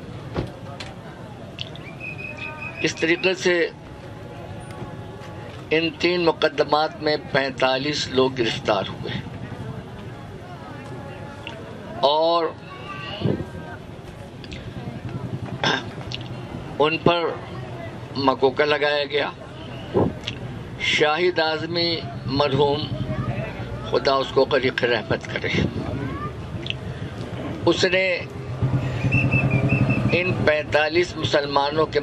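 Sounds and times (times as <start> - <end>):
faint murmur: 8.3 - 18.2
low engine hum: 25.7 - 30.5.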